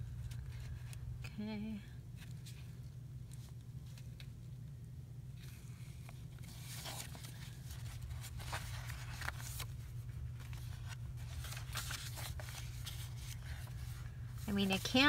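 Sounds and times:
steady low hum: 0.0s - 15.0s
paper rustling and crinkling: 5.4s - 15.0s.

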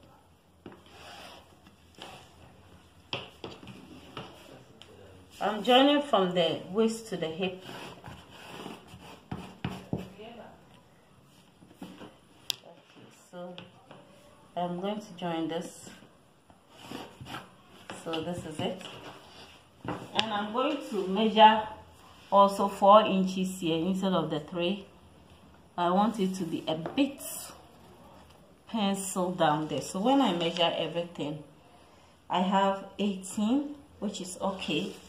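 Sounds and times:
chalk scraping on fabric: 0.8s - 2.3s.

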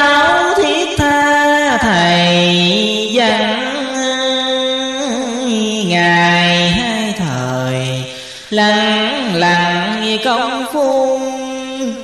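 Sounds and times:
person chanting verse: 0.0s - 12.0s.

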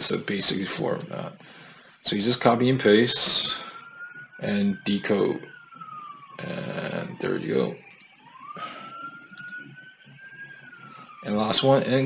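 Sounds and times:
faint siren wail: 0.0s - 12.0s.

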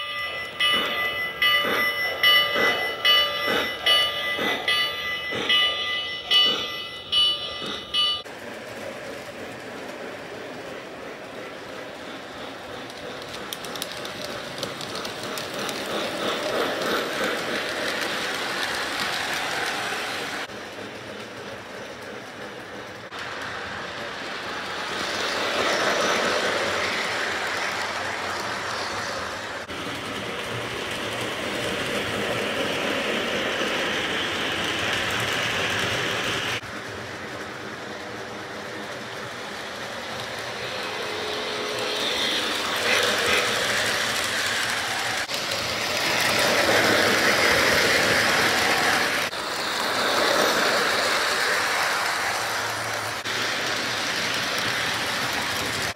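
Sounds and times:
train wheels clattering on rails: 0.0s - 55.9s.

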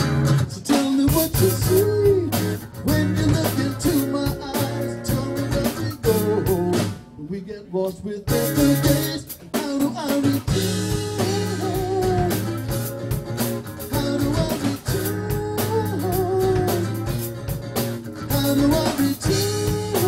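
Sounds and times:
acoustic guitar strumming: 0.0s - 7.0s, 8.3s - 20.0s
person singing wordless notes: 0.6s - 12.8s, 13.8s - 17.1s, 18.3s - 20.0s.

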